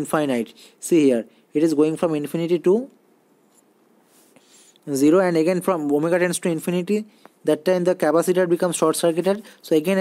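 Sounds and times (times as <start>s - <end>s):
man speaking: 0.0s - 3.0s, 4.8s - 10.0s
faint room hiss: 0.0s - 10.0s.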